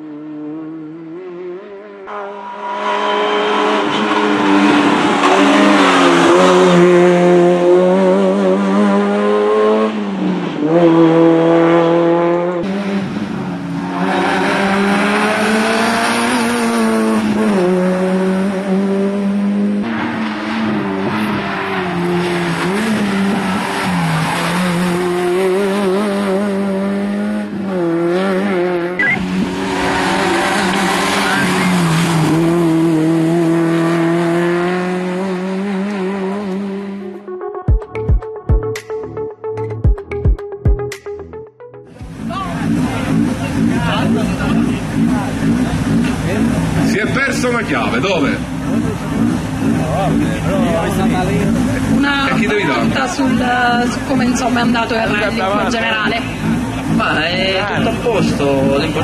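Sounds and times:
rally car engine revving high: 0.0 - 37.3, 41.9 - 59.0.

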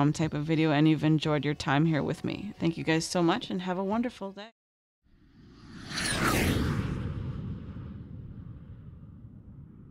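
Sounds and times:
low rumbling whoosh: 5.2 - 9.9.

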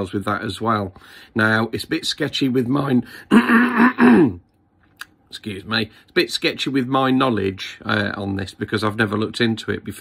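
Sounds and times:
man coughing: 3.3 - 4.4.

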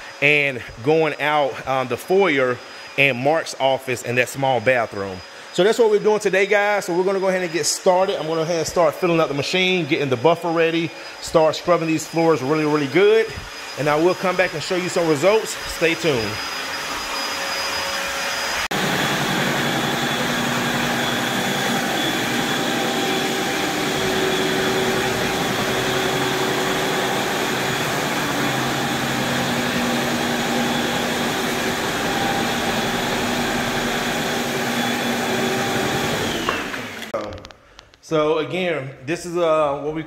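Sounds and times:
floor-scrubbing machine motor whine: 0.0 - 37.2.

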